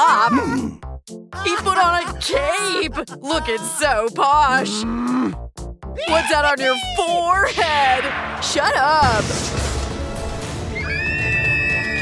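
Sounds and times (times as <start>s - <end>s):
background music: 0.0s - 12.0s
young women squealing: 10.8s - 12.0s.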